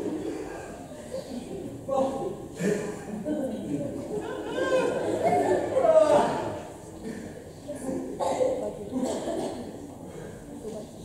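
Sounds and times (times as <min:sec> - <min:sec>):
speech and chatter in a hall: 0:00.0 - 0:11.0.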